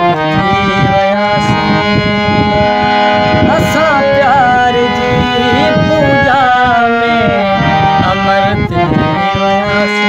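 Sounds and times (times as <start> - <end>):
harmonium melody: 0.0 - 10.0.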